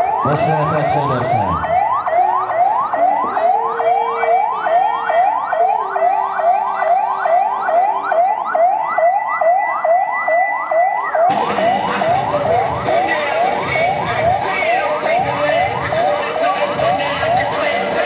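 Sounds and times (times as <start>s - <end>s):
ambulance siren yelping: 0.0s - 18.0s
crowd noise: 0.0s - 18.0s.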